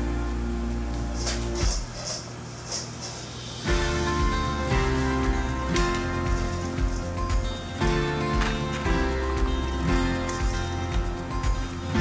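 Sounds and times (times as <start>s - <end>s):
background music sustained chords: 0.0s - 1.8s, 3.6s - 12.0s
hiss-like noise: 0.0s - 8.3s.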